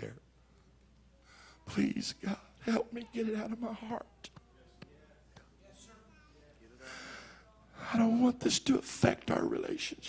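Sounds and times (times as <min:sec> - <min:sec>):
man speaking: 0:00.0 - 0:00.2, 0:01.6 - 0:04.3, 0:07.8 - 0:10.0.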